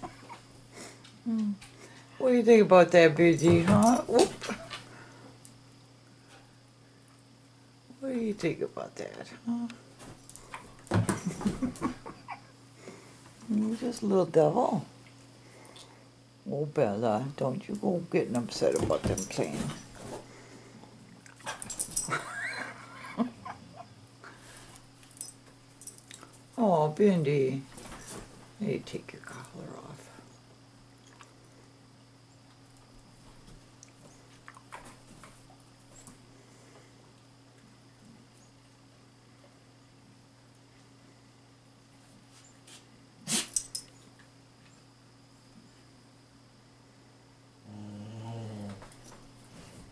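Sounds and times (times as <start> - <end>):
dog whining: 23.4 - 24.0.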